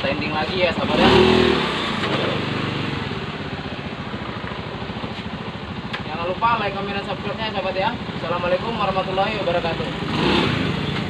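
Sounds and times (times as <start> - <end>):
scooter engine idling: 0.0 - 11.0.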